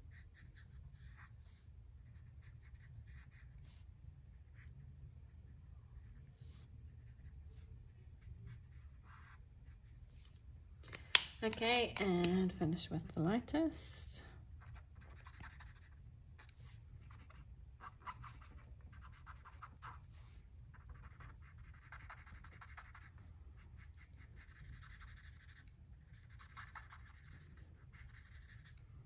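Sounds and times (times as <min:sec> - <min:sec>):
marker scratching on card: 0:00.1 - 0:04.7, 0:14.6 - 0:28.9.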